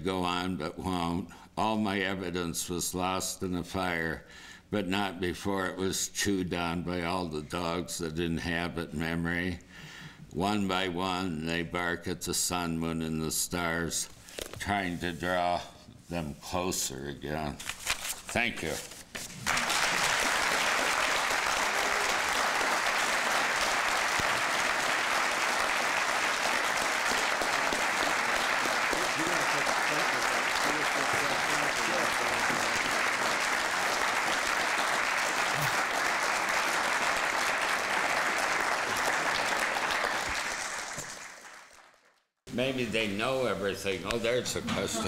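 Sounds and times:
audience applauding: 0:19.4 - 0:42.2.

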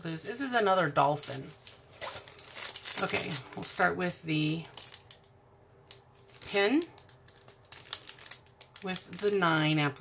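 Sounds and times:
plastic bag crinkling: 0:00.2 - 0:09.8.

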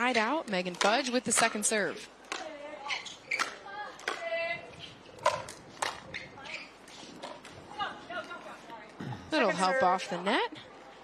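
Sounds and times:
paddles hitting plastic ball: 0:05.2 - 0:06.1.

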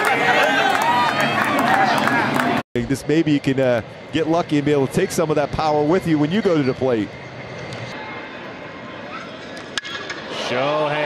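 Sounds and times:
crowd murmur: 0:00.0 - 0:02.6.

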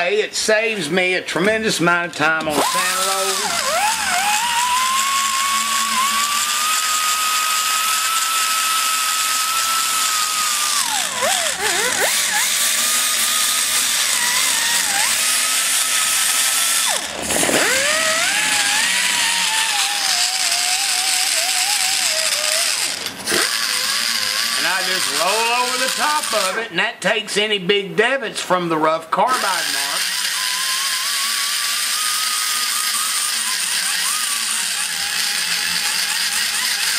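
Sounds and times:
die grinder whining: 0:01.3 - 0:26.8, 0:29.2 - 0:36.9.

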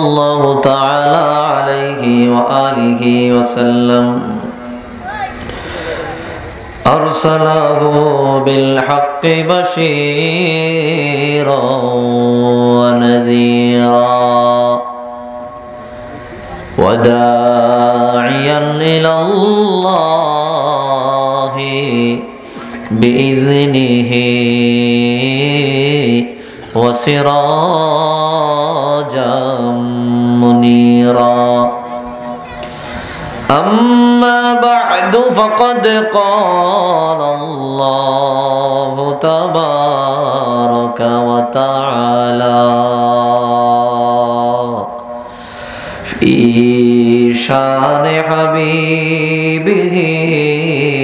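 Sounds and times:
man chanting into a microphone: 0:00.0 - 0:05.0, 0:05.6 - 0:32.6, 0:33.3 - 0:51.0.

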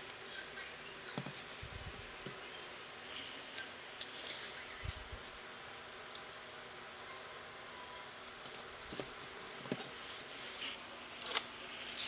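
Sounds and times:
low room hum: 0:00.0 - 0:12.0
paper tape handling: 0:10.4 - 0:12.0.

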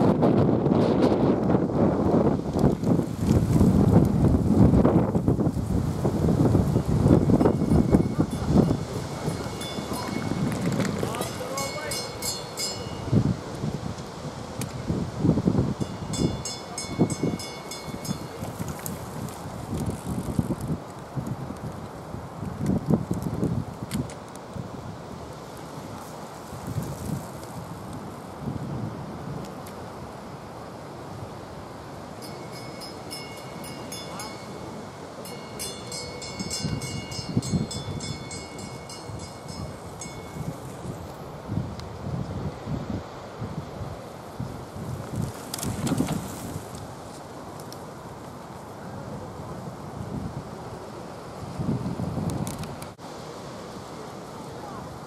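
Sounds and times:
wind buffeting microphone: 0:00.0 - 0:30.2, 0:31.1 - 0:53.0.

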